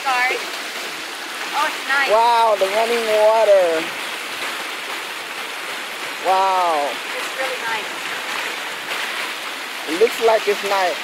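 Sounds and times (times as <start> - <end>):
creek rushing over rocks: 0.0 - 11.0.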